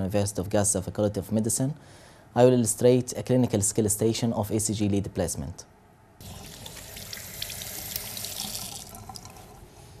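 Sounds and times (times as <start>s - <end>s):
tap water running into basin: 6.2s - 9.6s.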